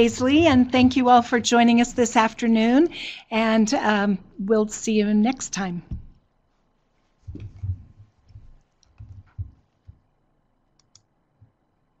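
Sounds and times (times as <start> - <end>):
mouse clicks: 10.8 - 11.1.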